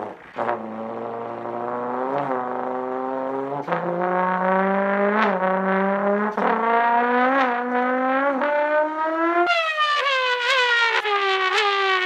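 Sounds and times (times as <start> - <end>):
trombone imitating car engine: 0.0 - 12.0.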